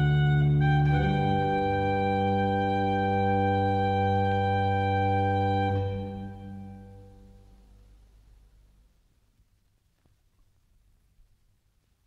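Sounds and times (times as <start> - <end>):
faint low rumble and hiss: 0.0 - 12.0.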